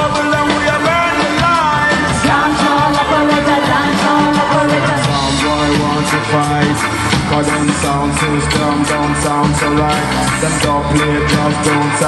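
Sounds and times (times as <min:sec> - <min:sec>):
live band playing dancehall groove: 0:00.0 - 0:12.0.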